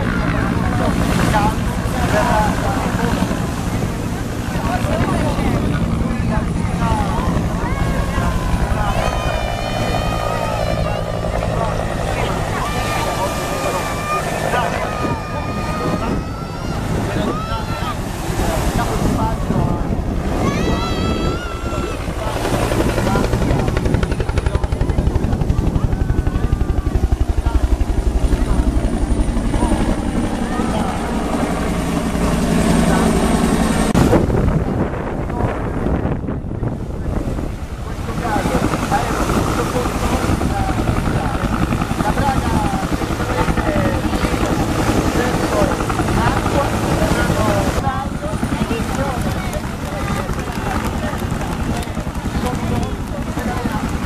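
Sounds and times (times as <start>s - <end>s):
helicopter rotor throbbing hum: 0.0s - 54.0s.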